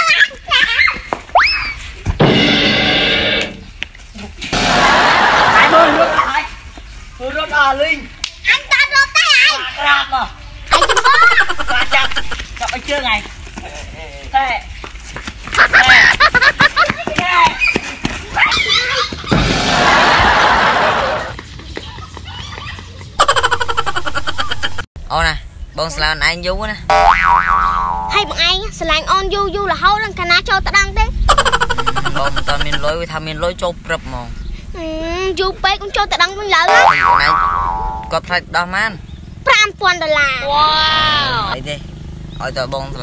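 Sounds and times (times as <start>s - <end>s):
loud rushing noise: 4.5s - 6.2s, 19.3s - 21.3s
steady buzzing tone: 26.9s - 28.4s
upward pitch glide: 36.7s - 38.1s.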